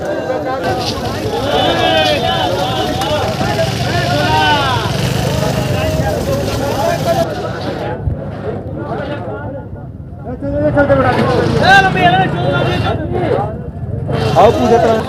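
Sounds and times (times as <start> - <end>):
vendors calling out: 0.0 - 7.4
overlapping voices: 0.0 - 7.9.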